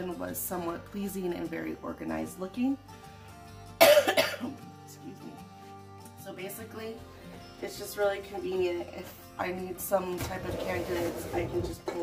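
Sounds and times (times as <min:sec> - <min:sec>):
soft background music: 0:00.0 - 0:12.0
woman coughing: 0:03.8 - 0:04.6.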